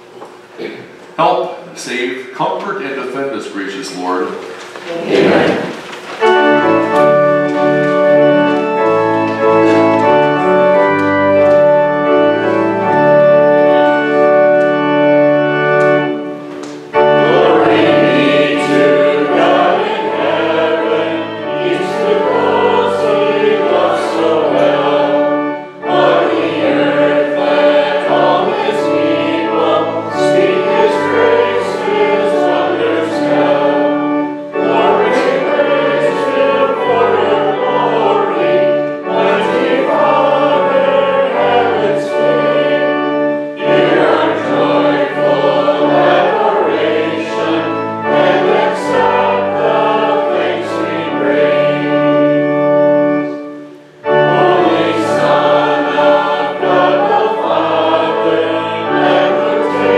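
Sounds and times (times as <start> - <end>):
congregation singing a hymn: 0.0 - 59.9
organ accompaniment: 0.0 - 59.9.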